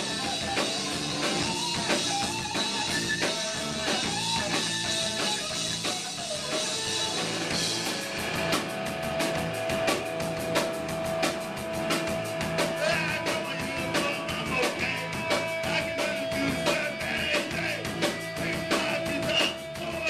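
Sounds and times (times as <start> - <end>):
rock band playing live: 0.0 - 20.0.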